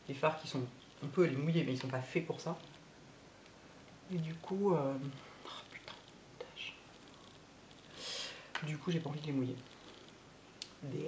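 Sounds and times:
woman speaking: 0:00.0 - 0:02.6, 0:04.1 - 0:06.8, 0:08.6 - 0:09.7
woman whispering: 0:04.1 - 0:07.0.

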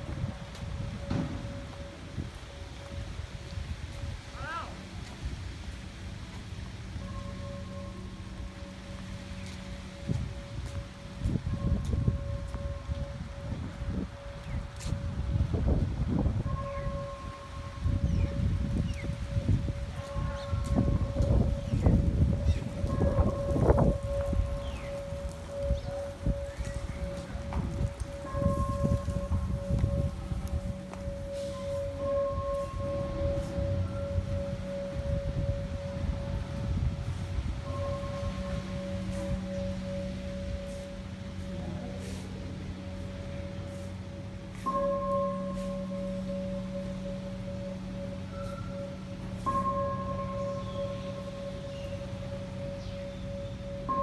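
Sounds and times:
faintly pulsing steady tone: 0:00.0 - 0:54.0
wind rumble on microphone: 0:00.0 - 0:54.0.

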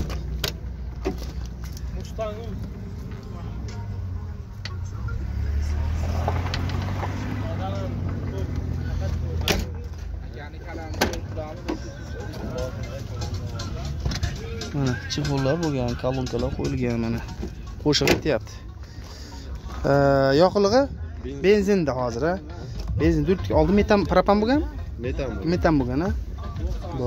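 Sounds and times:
motor vehicle rumble: 0:00.0 - 0:27.0
faint voices: 0:00.8 - 0:21.4.

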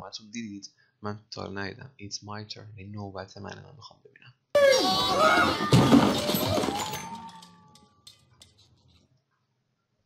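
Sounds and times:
plastic toys crashing onto floor: 0:04.7 - 0:08.2.

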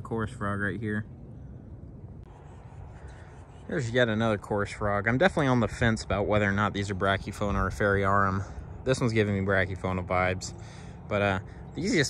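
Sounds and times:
low steady outdoor rumble: 0:00.0 - 0:12.0.

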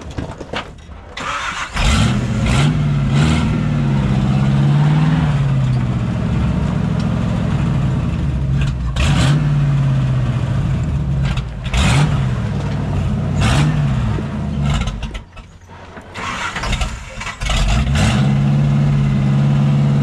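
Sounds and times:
car engine starting and revving: 0:01.2 - 0:15.4, 0:16.1 - 0:20.0.

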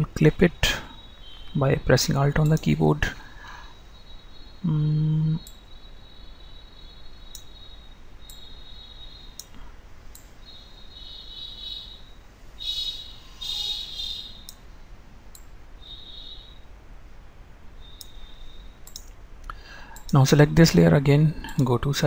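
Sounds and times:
computer mouse clicks: 0:07.3 - 0:07.5, 0:18.8 - 0:20.2.

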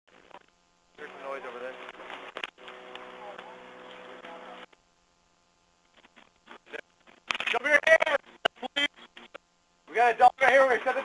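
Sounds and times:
radio hiss: 0:00.1 - 0:11.0
steady hum: 0:00.1 - 0:11.0
radio click: 0:00.2 - 0:04.8, 0:05.9 - 0:09.4
faint radio voices: 0:01.0 - 0:04.8.

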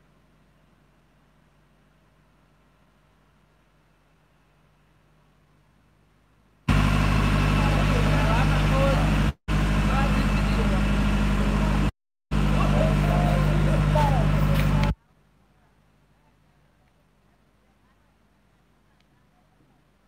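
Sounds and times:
engine hum: 0:06.6 - 0:15.0
people's voices: 0:12.4 - 0:20.0.

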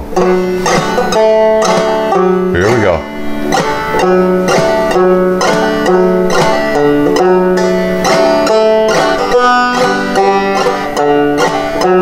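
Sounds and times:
banjo plucked notes: 0:00.0 - 0:12.0.

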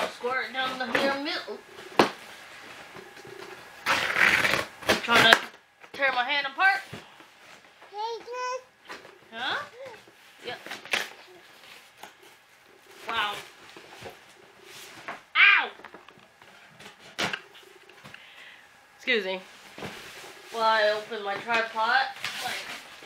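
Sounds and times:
child babbling: 0:07.9 - 0:08.7, 0:09.7 - 0:10.0.

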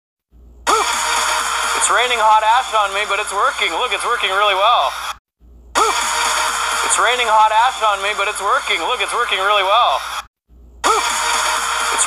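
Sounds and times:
person speaking: 0:01.8 - 0:05.1, 0:06.8 - 0:10.2.

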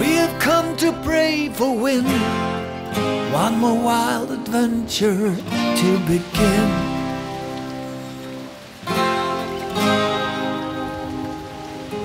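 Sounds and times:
guitar chords ringing: 0:00.0 - 0:12.0.

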